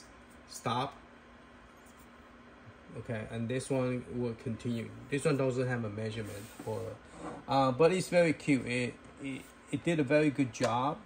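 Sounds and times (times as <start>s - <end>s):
mini fridges humming: 0.0s - 11.0s.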